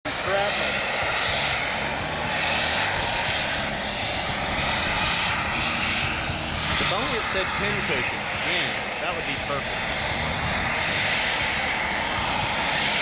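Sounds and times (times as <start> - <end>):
model jet turbine roar: 0.0 - 13.0.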